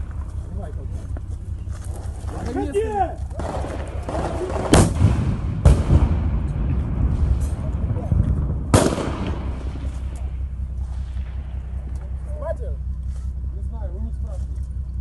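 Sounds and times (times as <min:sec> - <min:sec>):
constant low rumble: 0:00.0 - 0:15.0
loud gunshots with echo: 0:03.4 - 0:11.9.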